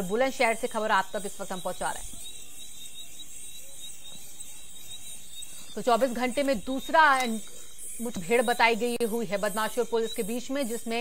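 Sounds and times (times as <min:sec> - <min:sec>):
faint thin whine: 0:00.0 - 0:11.0
high-pitched hiss: 0:00.0 - 0:11.0.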